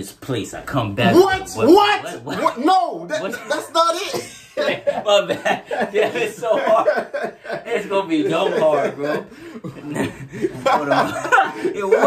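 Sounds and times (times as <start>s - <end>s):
men laughing: 1.2s - 12.0s.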